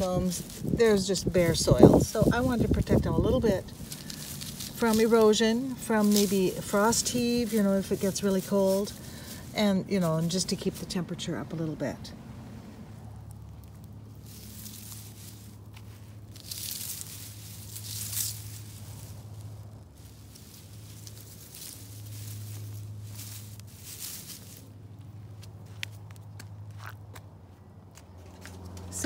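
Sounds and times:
low steady hum: 0.0 - 26.7
footsteps on garden ground: 0.0 - 29.0.

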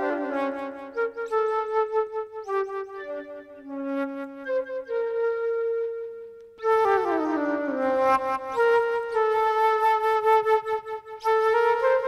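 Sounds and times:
solo flute: 0.0 - 12.0.

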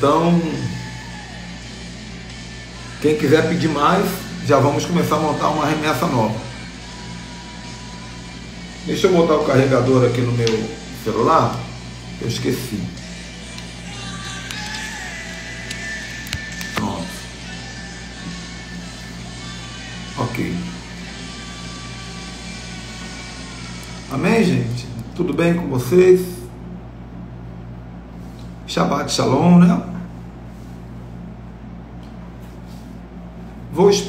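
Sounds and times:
low room hum: 0.0 - 34.0.

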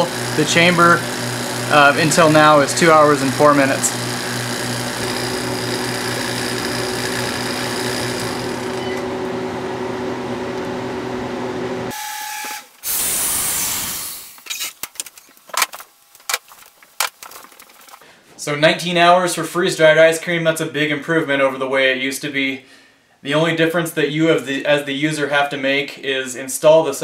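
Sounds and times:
freeze dryer pump humming: 0.0 - 11.9
loud air hiss: 12.8 - 14.4.

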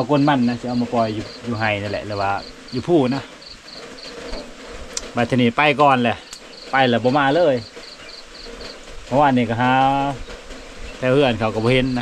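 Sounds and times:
man's voice: 0.0 - 3.3, 11.0 - 12.0
insect chirping: 0.0 - 12.0.

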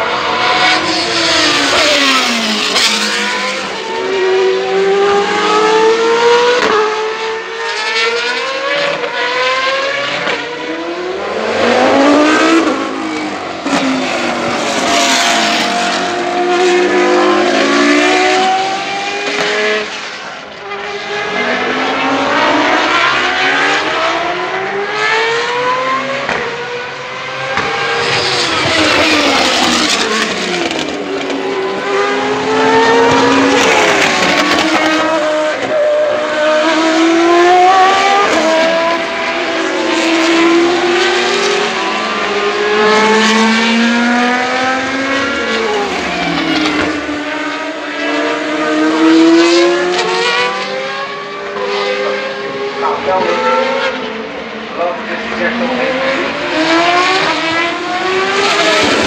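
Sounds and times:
racing car engines high-revving: 0.0 - 59.0.

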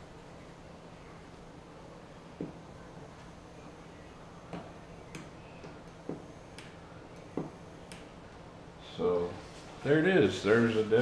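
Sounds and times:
light irregular clicks: 4.6 - 8.1.

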